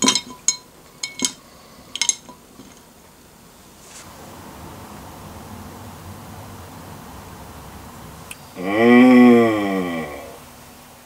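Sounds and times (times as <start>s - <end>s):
led modules clinking against glass: 0.0s - 2.8s.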